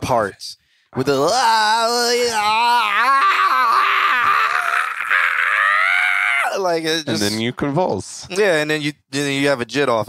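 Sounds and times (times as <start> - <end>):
man making strained raspy vocal noise: 1.9 - 7.4.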